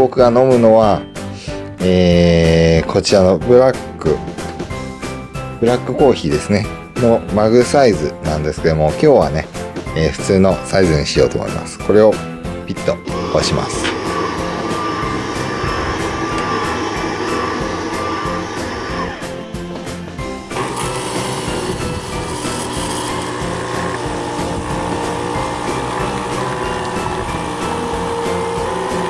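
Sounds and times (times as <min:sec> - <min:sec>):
coffee machine motor and pump whir: 0:13.1 - 0:19.4, 0:20.5 - 0:29.0
coffee pouring: 0:20.6 - 0:29.0.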